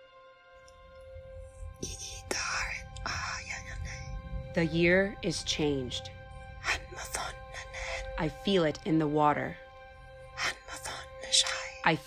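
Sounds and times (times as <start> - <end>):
droning music: 0.0 - 12.0
person whispering: 1.8 - 4.2, 6.6 - 8.2.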